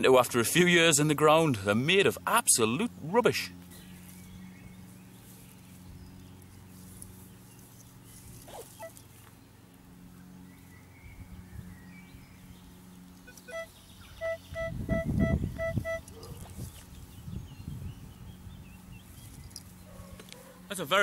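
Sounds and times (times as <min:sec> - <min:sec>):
metal detector beeps: 0:13.3 - 0:16.2.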